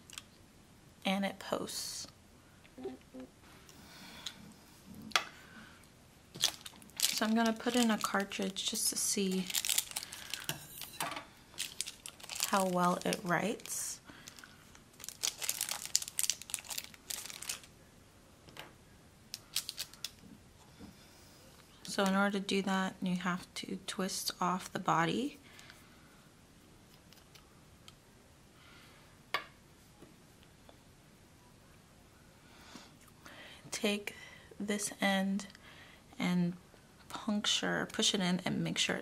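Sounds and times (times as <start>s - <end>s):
scissors cutting plastic packaging: 6.4s - 8.6s.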